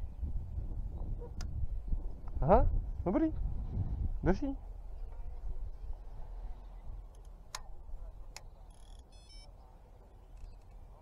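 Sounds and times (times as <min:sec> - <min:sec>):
bite alarm tone and beeps: 0:09.1 - 0:09.5.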